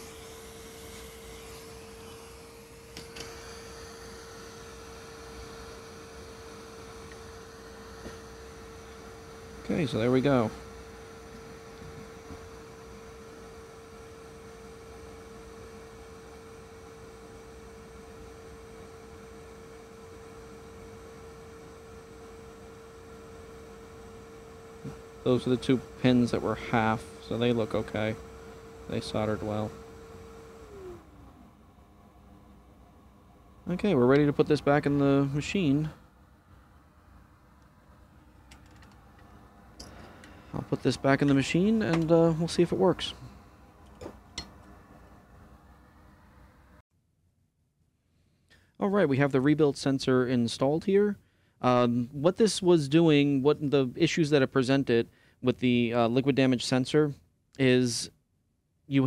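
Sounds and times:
steady electrical hum: 0.0s - 46.8s, 48.2s - 58.2s.

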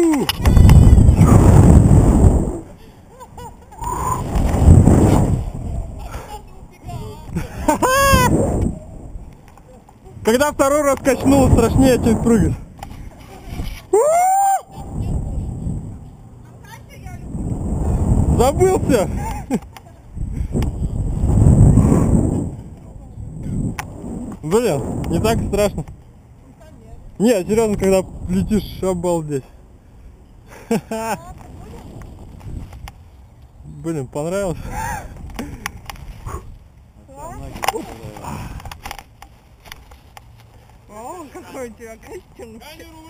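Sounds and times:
wind buffeting microphone: 0.0s - 33.7s, 34.4s - 39.1s.

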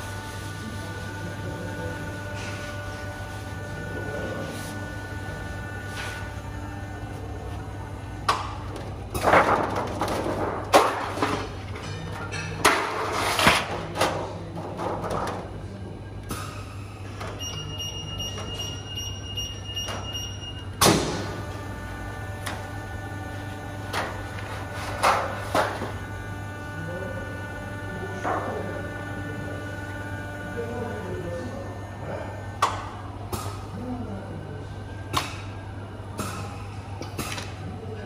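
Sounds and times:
printing press humming: 0.0s - 38.0s.

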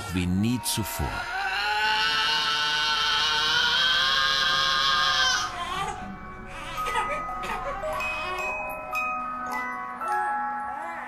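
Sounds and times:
baby crying: 1.0s - 8.7s.

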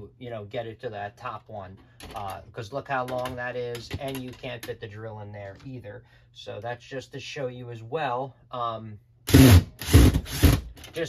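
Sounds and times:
cordless drill drilling into wood: 9.3s - 10.7s.

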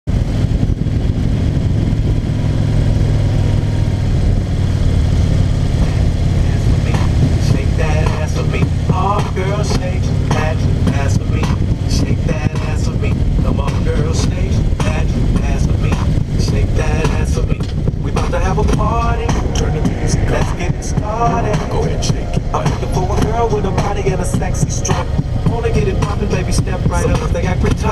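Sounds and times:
motorcycle engine: 0.1s - 27.9s
wind rumble: 0.1s - 27.9s
pop song with singing: 5.8s - 27.9s.

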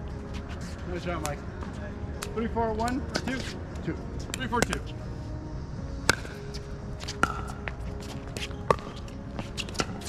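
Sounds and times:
people talking: 2.4s - 4.9s
balls struck on paddles: 4.3s - 4.9s, 6.0s - 7.8s, 8.4s - 10.0s.

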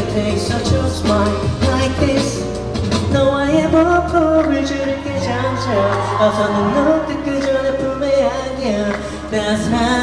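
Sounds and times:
man singing into microphone: 0.0s - 2.5s, 3.1s - 10.0s
pop backing track with bass: 0.0s - 10.0s.

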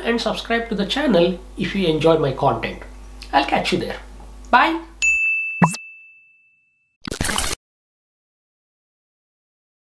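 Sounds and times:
bright single-tone ding: 5.0s - 6.8s.

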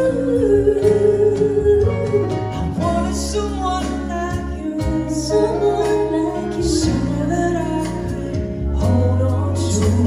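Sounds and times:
keyboard and electric guitar: 0.0s - 10.0s
man singing into a microphone: 0.0s - 10.0s.

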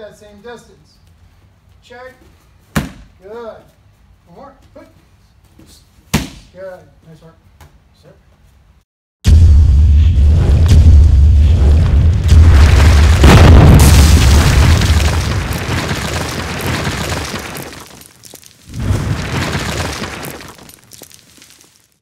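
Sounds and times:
deep boom: 9.2s - 16.9s
stone wall crumbling rumble: 9.8s - 21.8s.

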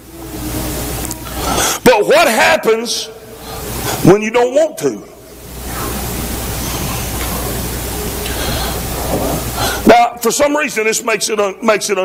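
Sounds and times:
low hum: 0.0s - 1.9s, 5.0s - 9.8s
steady hiss: 0.0s - 12.0s.

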